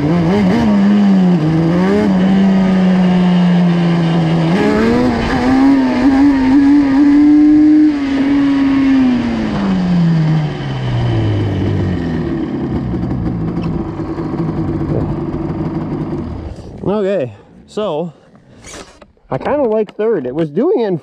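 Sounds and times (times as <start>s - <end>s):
two-stroke engine revving: 0.0s - 17.0s.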